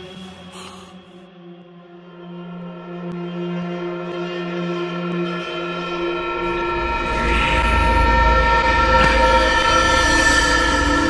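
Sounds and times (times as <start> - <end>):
sustained horror score chord: 0.0 - 11.0.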